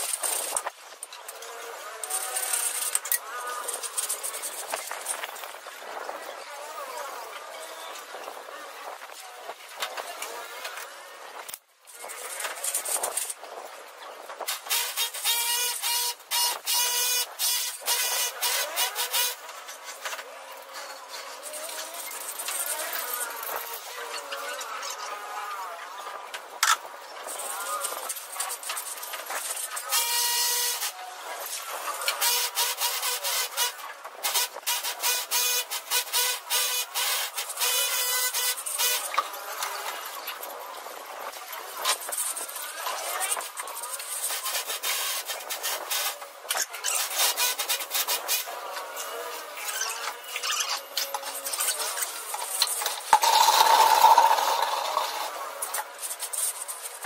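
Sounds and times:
trowel scraping screed mix: 0.0 - 6.1, 41.2 - 57.0.

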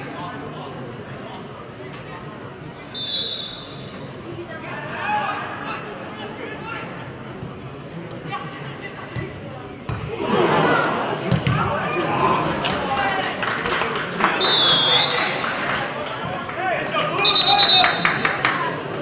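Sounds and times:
referee's whistle blasts: 2.9 - 4.0, 14.4 - 15.4, 17.2 - 18.3.

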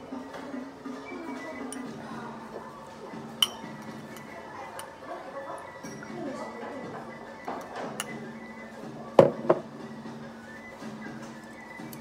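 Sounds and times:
restaurant background noise: 0.0 - 12.0
tableware clinking: 1.7 - 2.0, 3.3 - 5.0, 7.9 - 8.3.

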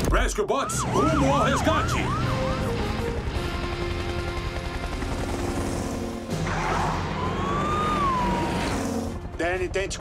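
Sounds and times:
rising and falling siren tone: 0.6 - 3.2, 6.3 - 9.2.

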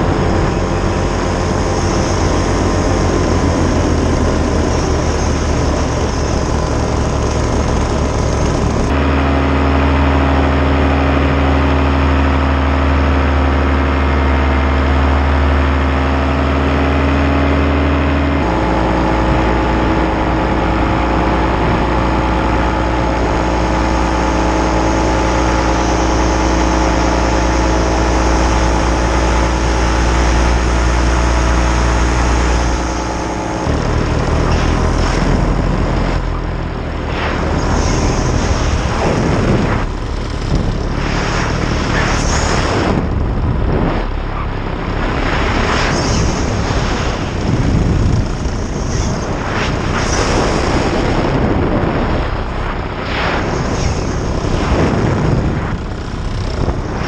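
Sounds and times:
paramotor engine droning: 0.0 - 57.0.

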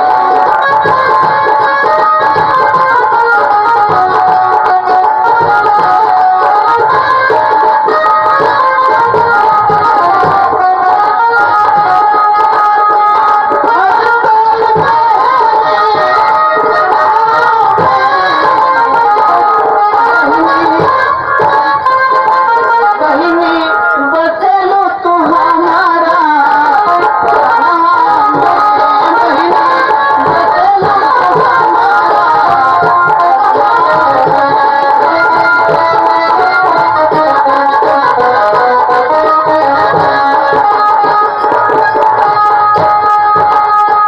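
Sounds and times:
loud instrumental accompaniment: 0.0 - 44.0
man singing into microphone: 23.0 - 35.0.

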